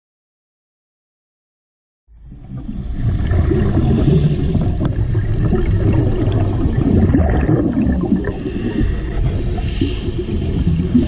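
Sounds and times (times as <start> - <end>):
underwater exhaled bubbles: 2.2 - 11.0.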